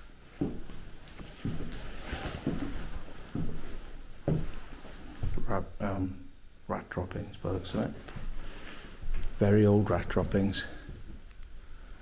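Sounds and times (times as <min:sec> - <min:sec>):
footsteps on creaking floorboards: 0:00.3 - 0:05.7, 0:08.0 - 0:11.3.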